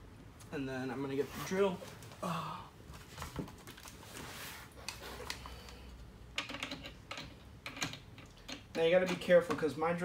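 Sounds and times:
tool handling clicks and knocks: 6.3 - 9.8.

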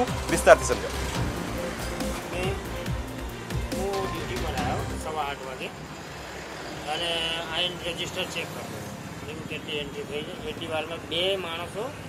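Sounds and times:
road vehicle noise: 0.0 - 12.0
voices speaking: 2.0 - 12.0.

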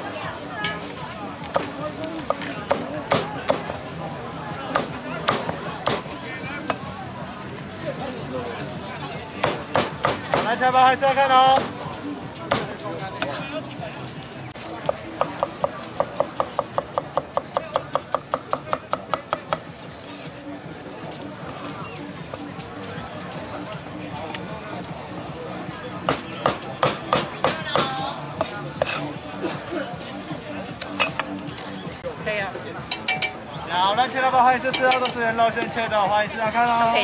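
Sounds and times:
steady background din: 0.0 - 37.0
cleaver chopping on wooden block: 2.3 - 3.7, 4.7 - 6.0, 9.4 - 10.6, 26.1 - 28.5.

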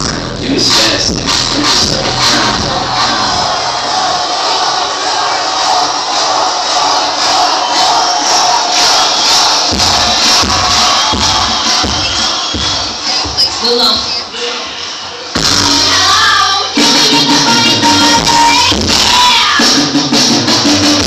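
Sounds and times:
loud pop music: 0.0 - 21.0
children shouting and cheering: 14.3 - 19.7.

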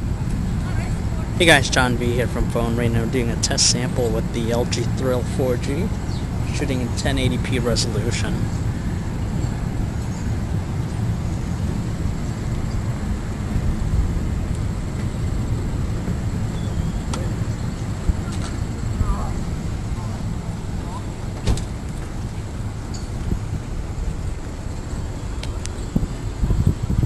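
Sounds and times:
road traffic: 0.0 - 27.0
wind rumble on microphone: 0.0 - 27.0.

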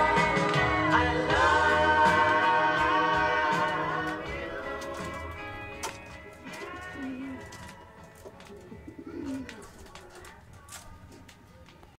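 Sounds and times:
ballad on vinyl record: 0.0 - 11.9.

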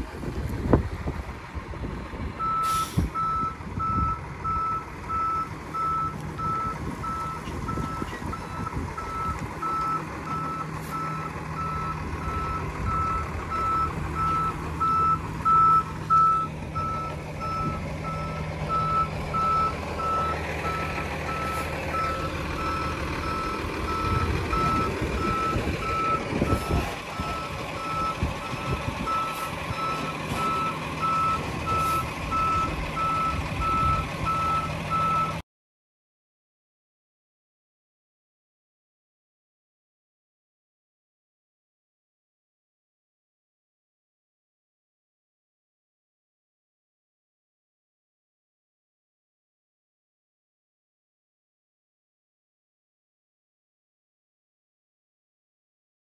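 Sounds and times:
truck engine running: 0.0 - 35.4
backup alarm beeping: 2.4 - 35.4.

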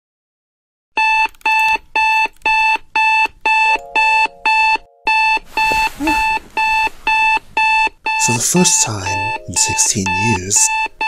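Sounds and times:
alarm clock beeping: 1.0 - 11.0.

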